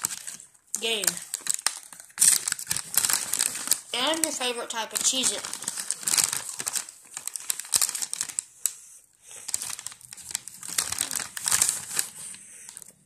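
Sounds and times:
plastic bag crinkling: 0:00.0 - 0:13.0.

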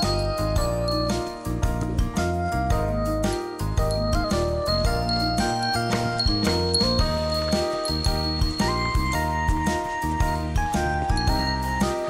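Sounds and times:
bell-like jingling melody: 0:00.0 - 0:12.0
steady beat: 0:00.0 - 0:12.0.

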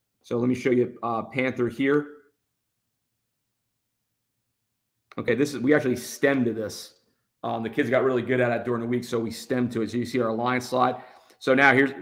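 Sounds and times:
man speaking: 0:00.2 - 0:02.2, 0:05.1 - 0:12.0.

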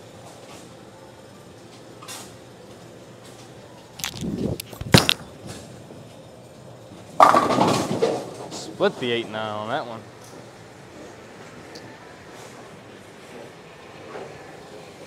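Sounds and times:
bowling ball rolling: 0:06.9 - 0:09.6
bowling ball thud on lane: 0:07.2 - 0:08.5
pins crashing and clattering: 0:07.2 - 0:08.6.

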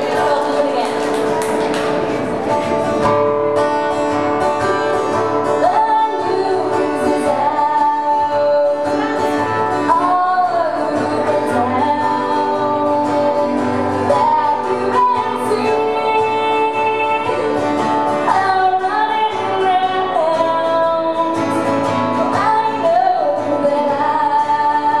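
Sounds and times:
woman singing into microphone: 0:00.0 - 0:01.4, 0:04.6 - 0:25.0.

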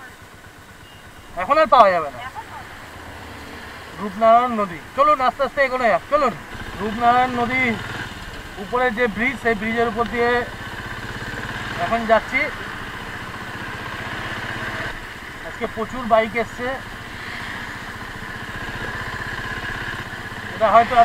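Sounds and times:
motorcycle engine running: 0:00.0 - 0:21.0
wind and road noise: 0:00.0 - 0:21.0
people talking: 0:01.4 - 0:02.7, 0:04.0 - 0:07.8, 0:08.6 - 0:10.5, 0:11.7 - 0:12.6, 0:15.4 - 0:16.8, 0:20.5 - 0:21.0.

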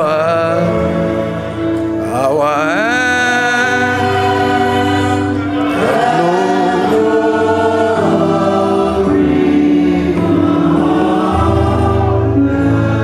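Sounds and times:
congregation singing a hymn: 0:00.0 - 0:13.0.

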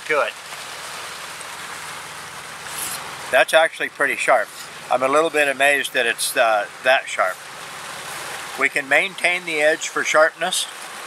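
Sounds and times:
waterfall rushing into pond: 0:00.0 - 0:11.0.

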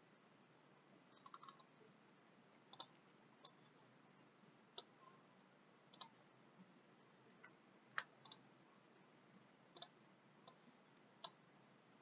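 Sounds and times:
computer mouse clicks: 0:01.1 - 0:01.7, 0:02.7 - 0:03.7, 0:04.8 - 0:05.0, 0:05.9 - 0:06.2, 0:07.4 - 0:08.4, 0:09.8 - 0:10.6, 0:11.2 - 0:11.4.

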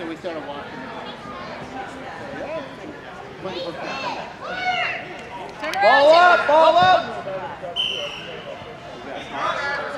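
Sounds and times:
referee's whistle blast: 0:07.8 - 0:08.5.

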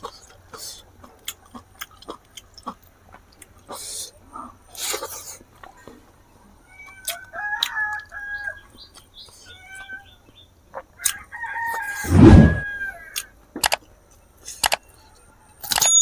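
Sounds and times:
rooster crowing: 0:07.0 - 0:08.6, 0:11.0 - 0:13.2
sharp clicks: 0:13.6 - 0:13.8.

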